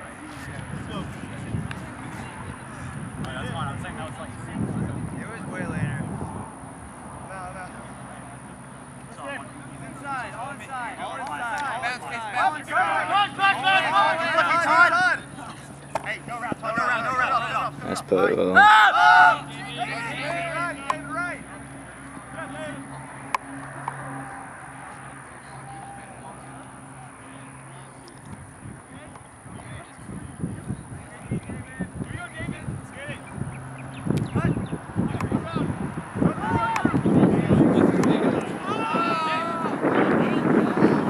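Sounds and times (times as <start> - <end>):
players shouting and calling: 6.8 - 41.0.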